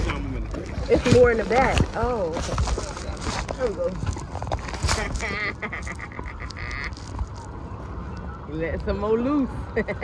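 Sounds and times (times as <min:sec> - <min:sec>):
wind: 0:00.0 - 0:10.0
rubbing on microphone: 0:00.8 - 0:07.6.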